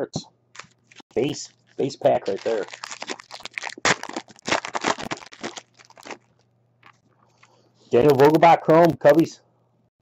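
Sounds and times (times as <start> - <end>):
cards being handled: 0.6 - 6.2
card pack wrapper crinkling: 0.6 - 7.0.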